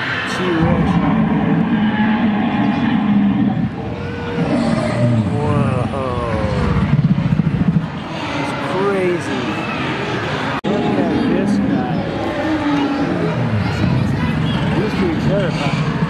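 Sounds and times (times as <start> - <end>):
crowd chatter: 0.0 - 16.0
dinosaur roars and growls: 0.0 - 16.0.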